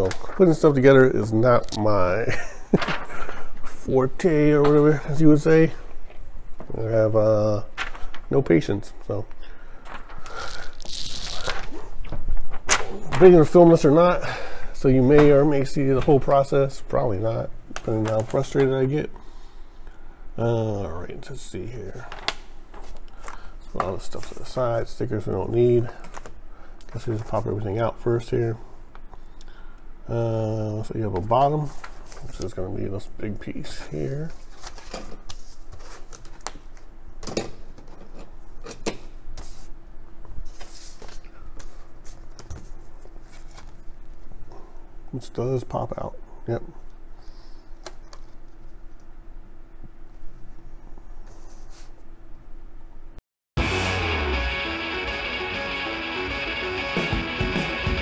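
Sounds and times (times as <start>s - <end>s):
packaging crinkling: 9.9s - 12.7s.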